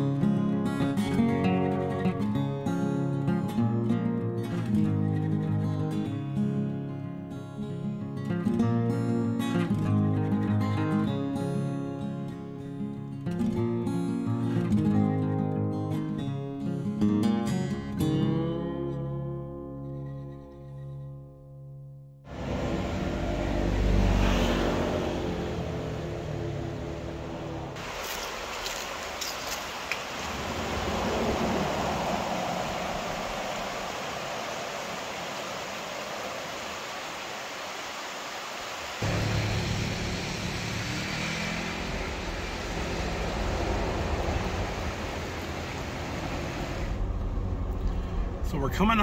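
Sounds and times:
motorcycle passing: 22.3 - 29.3, 30.2 - 36.8, 39.0 - 48.4
car engine and tyre noise: 22.3 - 49.0
steady rushing noise: 29.7 - 49.0.

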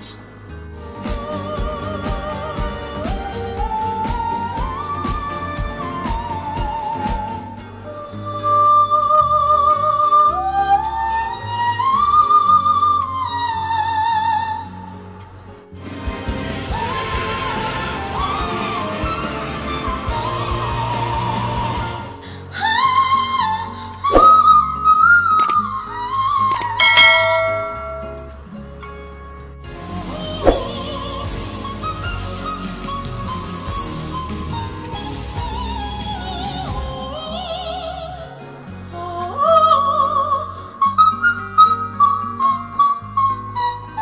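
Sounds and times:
instrumental backing track: 0.0 - 11.7, 24.0 - 39.4
backing track: 26.5 - 28.6.

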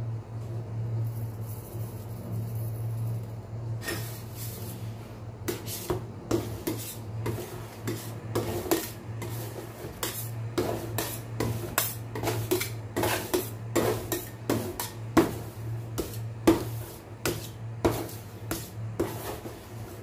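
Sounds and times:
steady low hum: 0.0 - 20.0
metal spatulas scraping steel plate: 5.5 - 20.0.

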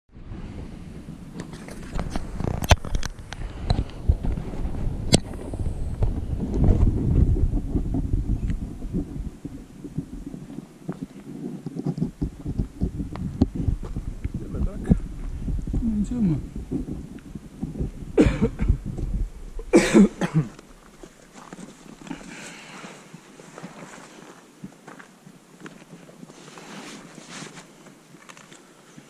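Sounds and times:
wind on microphone: 0.1 - 23.3.

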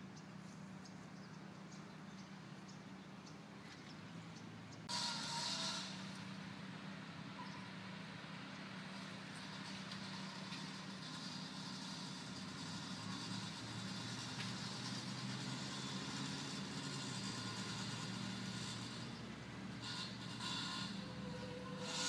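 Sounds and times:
vehicle engine running: 0.0 - 22.0.

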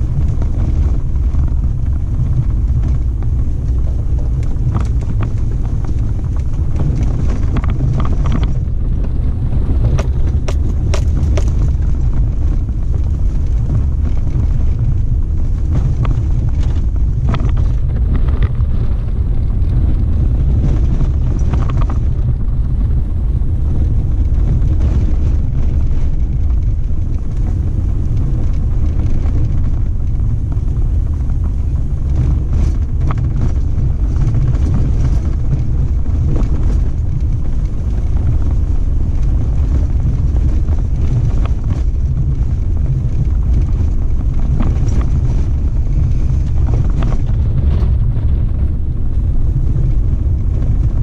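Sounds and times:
vehicle rumbling on dirt: 0.0 - 51.0.

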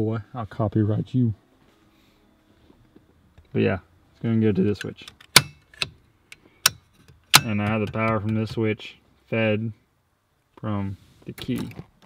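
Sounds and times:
toggle switches clicking: 4.7 - 8.5.

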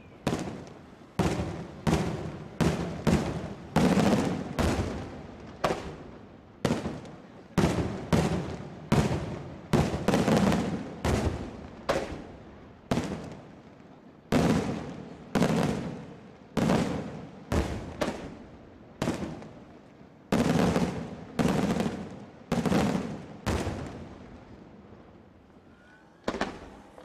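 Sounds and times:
fireworks shells bursting: 25.5 - 27.0.

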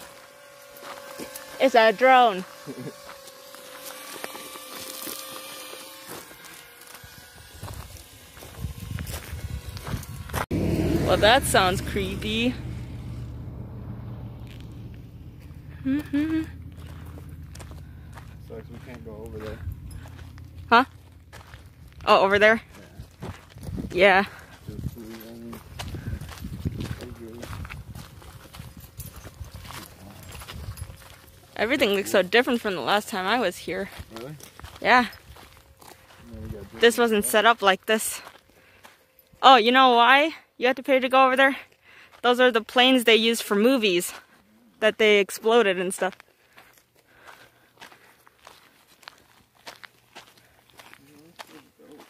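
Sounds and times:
drone humming: 0.0 - 36.1
footsteps on gravel: 0.0 - 39.8, 45.6 - 52.0
wind buffeting microphone: 7.2 - 13.2, 23.0 - 25.0, 25.6 - 31.1.

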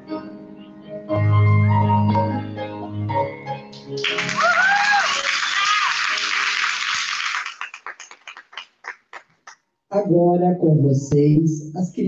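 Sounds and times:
music: 0.0 - 6.4
audience cheer: 4.0 - 7.8
audience applauding: 4.0 - 9.6.

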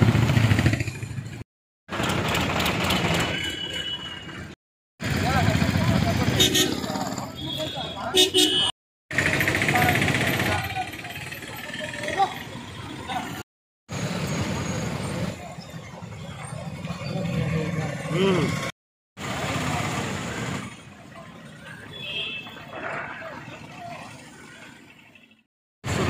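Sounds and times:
motorcycle engines passing: 5.0 - 8.0, 9.1 - 13.4, 14.0 - 24.8
people talking: 5.1 - 8.4, 9.6 - 13.4, 17.0 - 18.6, 19.4 - 24.3.

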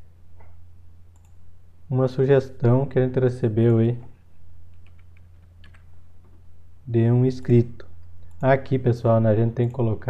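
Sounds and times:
computer keyboard typing: 4.8 - 5.9.

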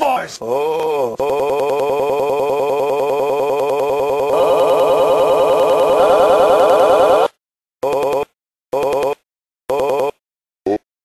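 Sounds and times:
telephone ringing: 1.2 - 10.2.

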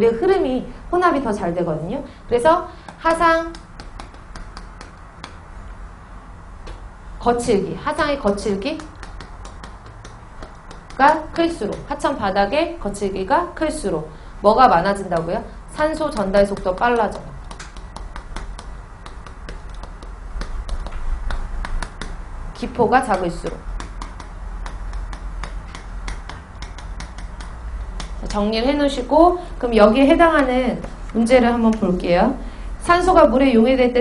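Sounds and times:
low steady hum: 0.0 - 34.0
chalk tapping on chalkboard: 2.8 - 5.5, 7.9 - 12.4, 14.8 - 28.7.

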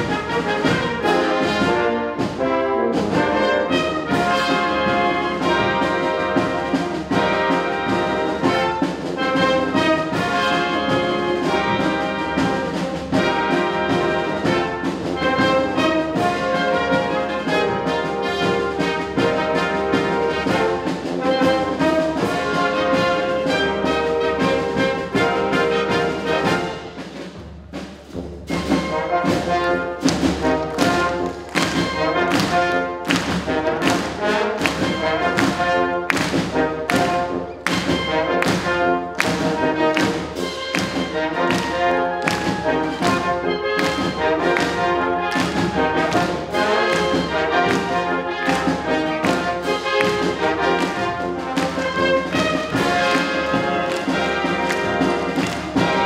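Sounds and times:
brass band playing pop: 0.0 - 56.0.

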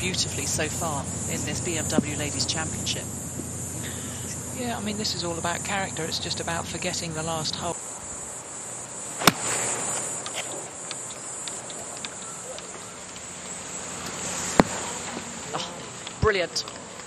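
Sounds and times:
insects chirring: 0.0 - 17.0
golf club striking ball: 9.2 - 10.6, 14.5 - 14.8.

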